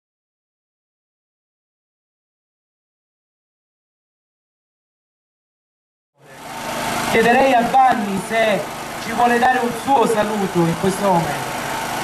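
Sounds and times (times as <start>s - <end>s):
steady mechanical hum: 6.2s - 12.0s.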